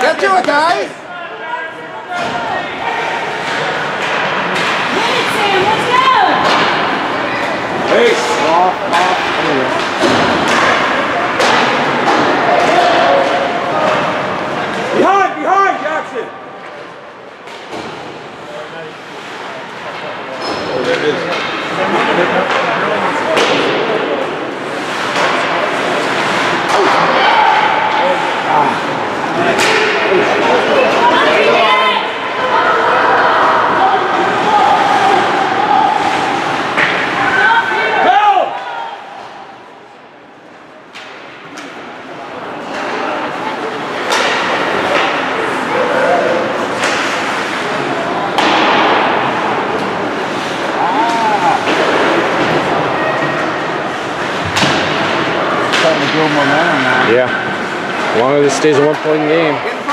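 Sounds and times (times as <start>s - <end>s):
puck and sticks knocking boards: 7.8s - 14.0s, 23.3s - 24.1s, 29.5s - 30.0s, 46.7s - 47.6s, 48.3s - 50.5s
indistinct shouting voices: 26.1s - 39.8s.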